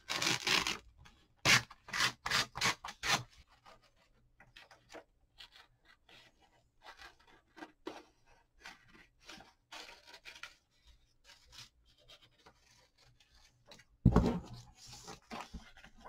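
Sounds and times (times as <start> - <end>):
paper rustling: 14.6 - 16.0.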